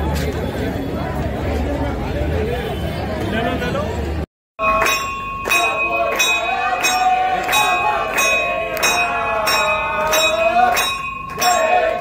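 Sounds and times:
temple bell ringing: 4.6s - 12.0s
voices singing: 4.8s - 12.0s.

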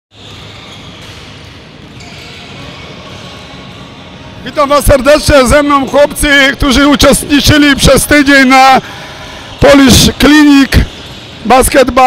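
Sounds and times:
large hall background noise: 0.1s - 12.0s
basketballs bouncing on court: 0.2s - 5.0s, 10.1s - 11.8s.

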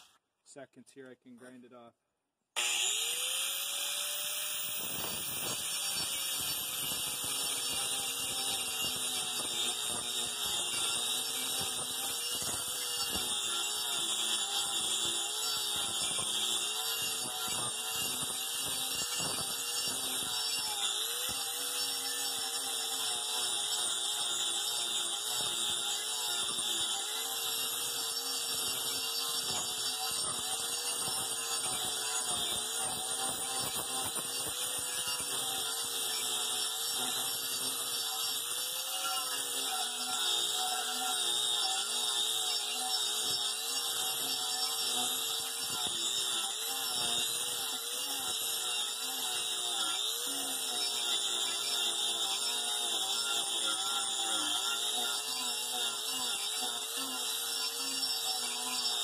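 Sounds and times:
angle grinder grinding wood: 2.6s - 59.0s.

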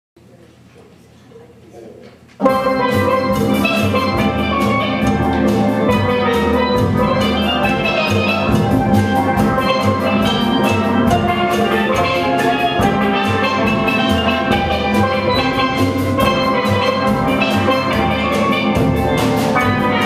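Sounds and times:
bass pan notes: 2.4s - 20.0s
drum kit beat: 2.4s - 20.0s
steel pans playing runs: 2.5s - 20.0s.

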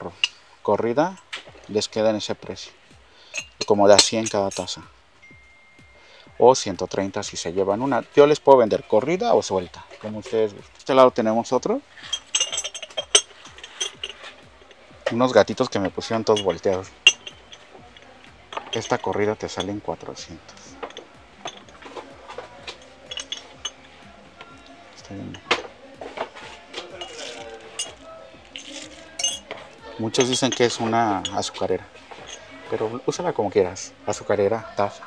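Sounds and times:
ceramic mugs clinking: 3.3s - 6.2s, 12.0s - 34.3s.

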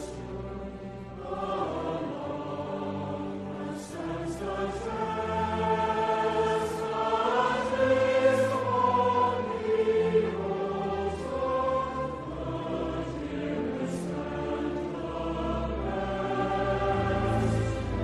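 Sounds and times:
choir singing held notes: 0.0s - 18.0s.

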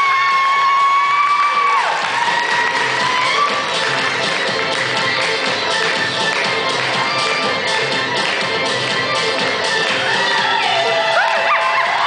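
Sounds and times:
busy musical accompaniment: 1.0s - 12.0s.

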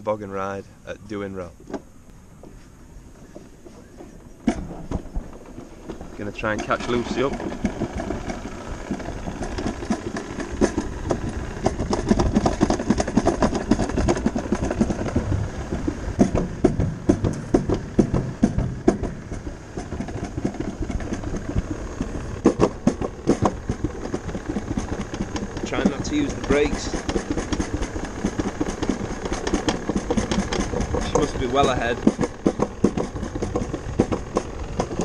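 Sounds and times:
sled knocks and rattles: 0.0s - 35.0s
toboggan sled rushing rumble: 3.0s - 35.0s.

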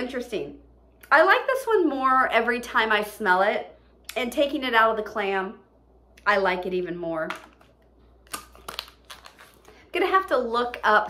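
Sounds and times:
plastic packaging crinkling: 7.4s - 9.9s.

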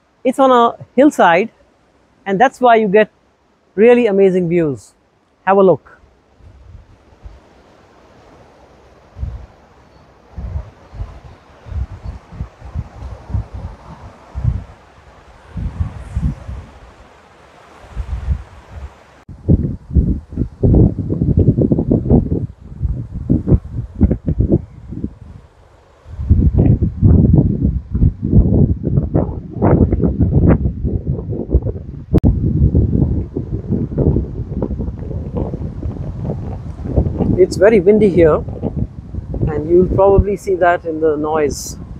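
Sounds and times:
wind buffeting microphone: 6.4s - 7.7s, 9.1s - 17.1s, 17.8s - 41.9s.

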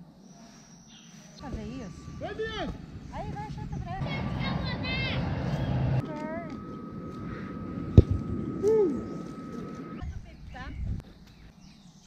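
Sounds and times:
low rumble: 1.5s - 11.1s.

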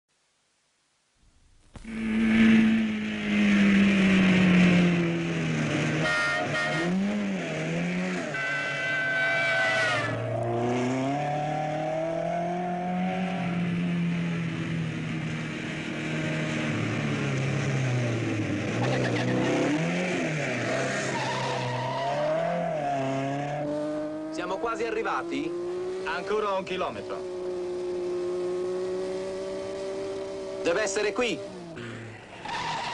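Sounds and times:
car engine revving hard: 1.8s - 14.4s, 17.6s - 32.6s.

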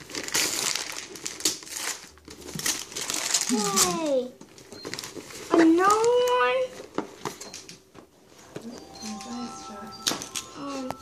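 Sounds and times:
gift box and paper rustling: 0.0s - 11.0s.

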